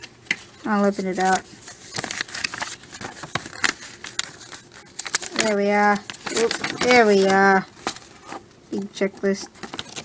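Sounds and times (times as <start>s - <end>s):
paper crinkling: 0.8s - 8.4s, 9.6s - 10.0s.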